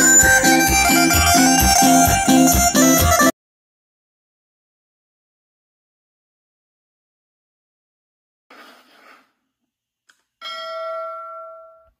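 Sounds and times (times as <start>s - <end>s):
bell-like chime ringing: 10.4s - 12.0s.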